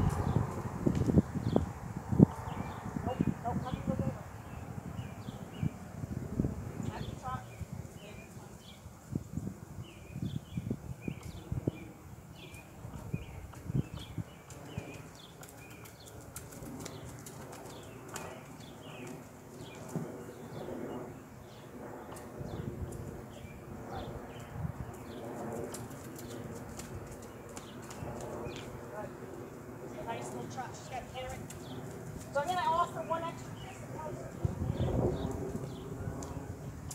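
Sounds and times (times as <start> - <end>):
small birds chirping: 1.4 - 5.8, 6.8 - 36.9
horse hooves thudding on grass: 12.8 - 20.3.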